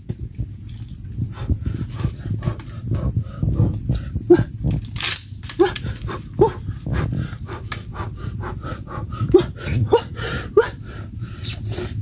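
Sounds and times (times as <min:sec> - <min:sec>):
wood cracking and splintering: 0:04.8 - 0:06.1
wood snapping: 0:04.8 - 0:06.2.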